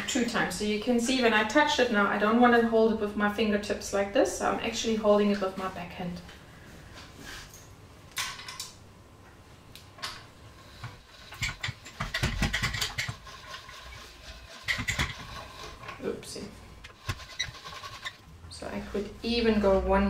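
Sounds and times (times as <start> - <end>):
pasta machine rattling and clicking: 10.7 - 16.0, 16.9 - 18.2.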